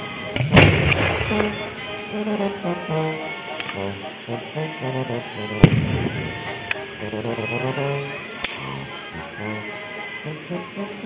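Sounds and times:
music with singing: 0.0s - 11.0s
firework bang: 0.3s - 2.0s, 5.6s - 6.6s.

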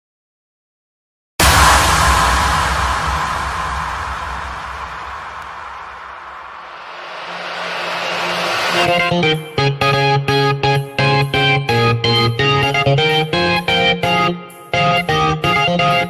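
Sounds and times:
loud hit with deep rumble: 1.4s - 9.4s
rushing noise: 1.4s - 9.5s
rising swell: 1.4s - 9.6s.

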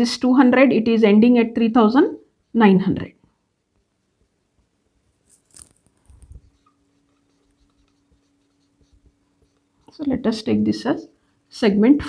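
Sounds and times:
marker pen on whiteboard: 3.6s - 11.8s.

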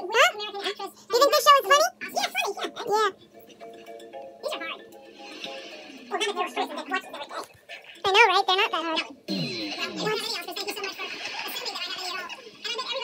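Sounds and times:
game show music: 3.2s - 8.7s
game show voices: 4.3s - 13.0s.

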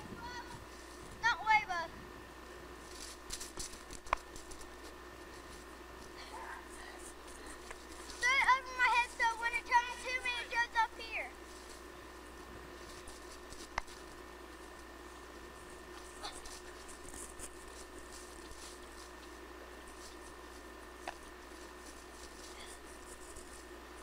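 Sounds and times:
high-pitched wordless cries: 8.2s - 11.4s.

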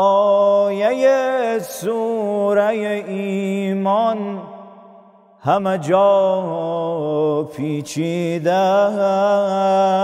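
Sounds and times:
man chanting devotional song: 0.0s - 10.0s.

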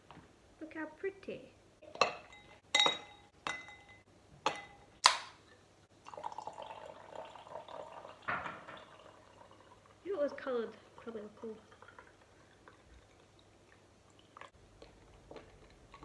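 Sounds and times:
sparkling water pouring over ice: 6.0s - 13.1s.

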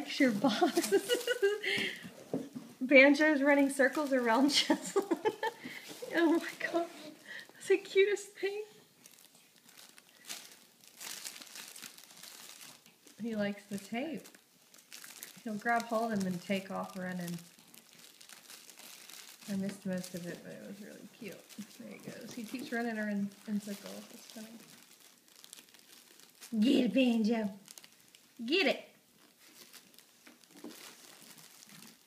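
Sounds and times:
paper crinkling: 0.0s - 2.0s, 3.4s - 7.4s, 8.8s - 28.4s, 29.0s - 32.0s.

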